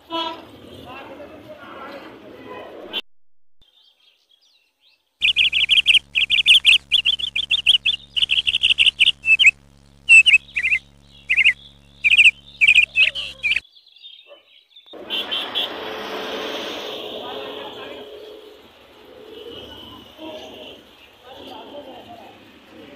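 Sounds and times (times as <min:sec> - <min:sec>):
small birds chirping: 0:03.7 - 0:15.0.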